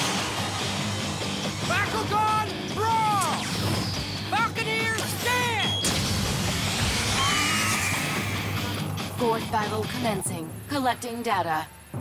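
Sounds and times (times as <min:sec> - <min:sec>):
dramatic background music: 0:00.0 - 0:12.0
sharp crash: 0:05.8 - 0:08.6.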